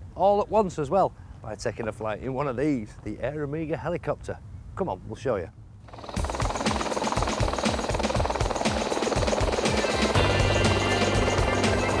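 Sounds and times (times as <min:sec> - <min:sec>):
helicopter rotor chop: 0:05.9 - 0:12.0
high steady tones: 0:05.9 - 0:12.0
background music: 0:06.2 - 0:12.0.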